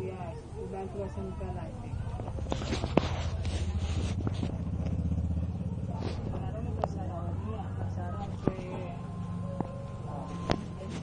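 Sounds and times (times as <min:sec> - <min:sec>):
engine rumbling: 0:00.0 - 0:11.0.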